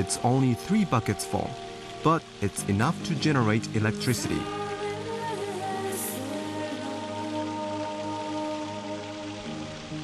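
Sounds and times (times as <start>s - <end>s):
background music of held notes: 0.0s - 10.0s
water rushing over metal grate: 0.0s - 10.0s.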